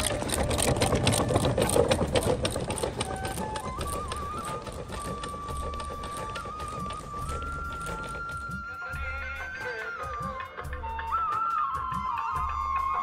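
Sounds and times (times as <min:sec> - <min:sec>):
hooves clattering on asphalt: 0:00.0 - 0:08.6
wooden cart rattling: 0:00.0 - 0:08.7.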